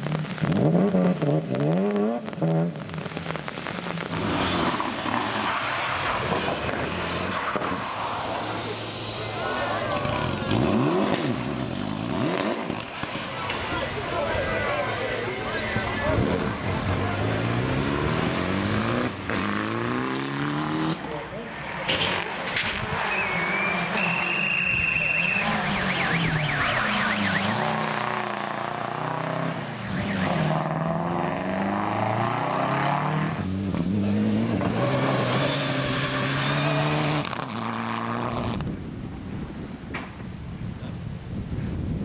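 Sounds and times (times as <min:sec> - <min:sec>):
rally car engines revving: 0:00.0 - 0:38.9.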